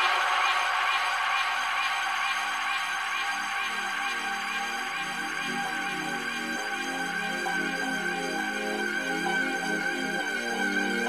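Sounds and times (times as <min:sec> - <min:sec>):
dance track playing: 0:00.0 - 0:10.4.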